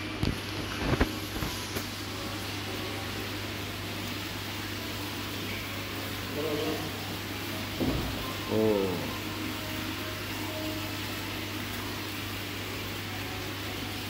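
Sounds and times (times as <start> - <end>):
sharp knocks: 7.8 - 8.2.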